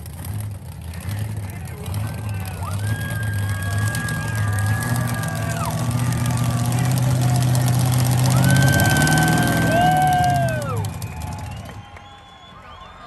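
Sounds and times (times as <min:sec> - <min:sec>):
car engine revving high: 0:00.0 - 0:11.8
tyres spinning: 0:00.8 - 0:12.0.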